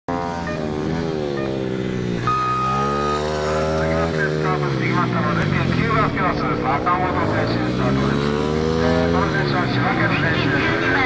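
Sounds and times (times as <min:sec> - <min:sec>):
motorcycle engine revving: 0:00.1 - 0:11.0
steady high beep: 0:02.2 - 0:04.4.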